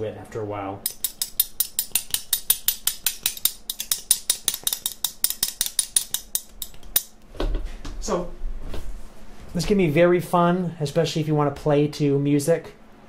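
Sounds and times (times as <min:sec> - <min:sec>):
metal spoons clicking rhythm: 0:00.8 - 0:07.2.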